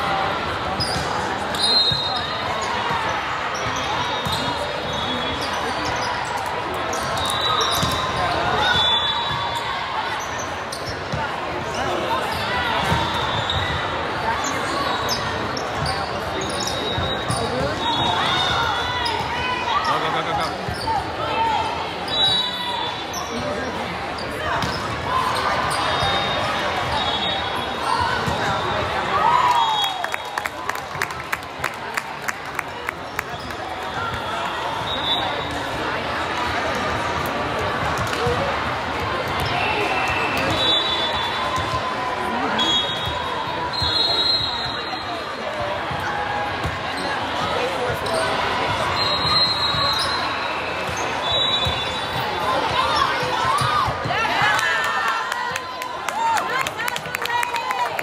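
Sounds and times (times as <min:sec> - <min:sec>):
sneakers squeaking on floor: 0:00.7 - 0:09.6, 0:10.2 - 0:21.2, 0:22.0 - 0:28.9, 0:46.6 - 0:54.1.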